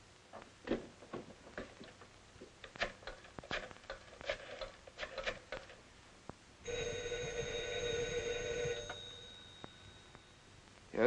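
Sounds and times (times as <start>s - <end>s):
telephone bell ringing: 6.6s - 10.5s.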